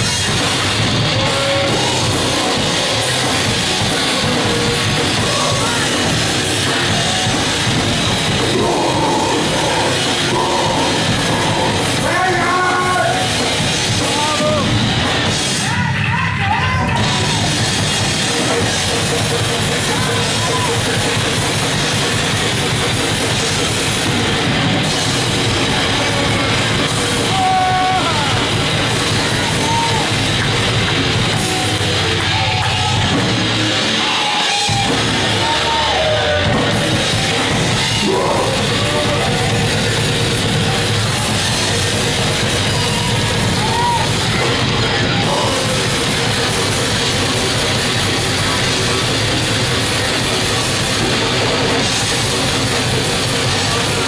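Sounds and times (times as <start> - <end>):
heavy metal band playing live: 0.0 - 54.0.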